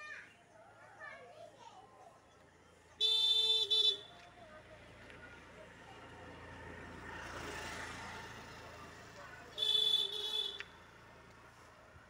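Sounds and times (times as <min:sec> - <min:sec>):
road vehicle passing: 0:02.6 - 0:12.0.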